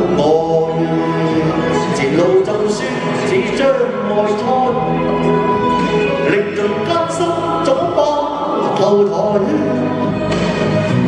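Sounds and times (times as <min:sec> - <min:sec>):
man singing into microphone: 0:00.0 - 0:05.2, 0:06.1 - 0:10.1
instrumental accompaniment: 0:00.0 - 0:11.0.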